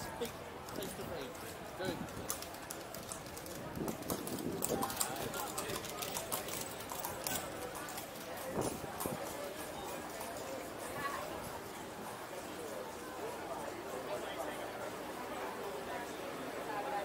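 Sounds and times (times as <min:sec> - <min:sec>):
hooves clip-clopping on cobblestones: 0:00.0 - 0:17.0
people talking: 0:00.0 - 0:17.0.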